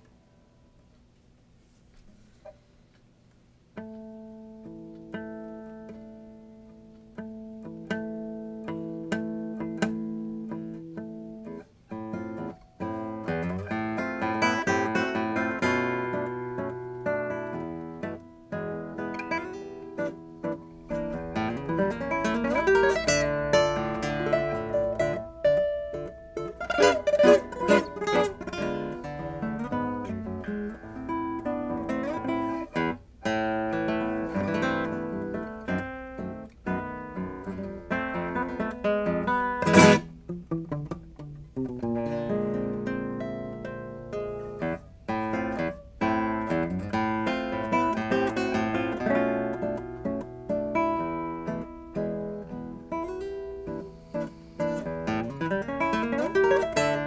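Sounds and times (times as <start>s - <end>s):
classical guitar fingerstyle: 1.6s - 57.0s.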